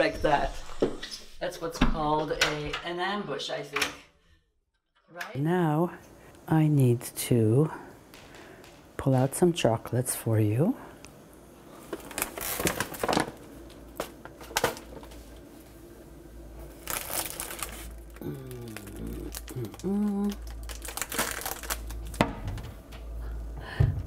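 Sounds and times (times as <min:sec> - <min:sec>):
plastic and foil wrappers crinkling: 0:11.7 - 0:15.5, 0:16.6 - 0:22.4
person murmuring: 0:18.2 - 0:20.5.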